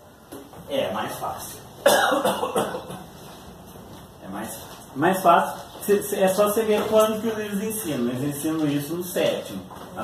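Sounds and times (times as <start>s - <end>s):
person coughing: 1.8s - 3.0s.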